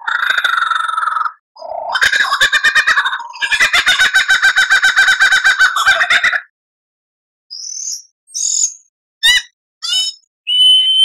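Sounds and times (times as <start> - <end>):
lyrebird song: 7.5 - 11.0.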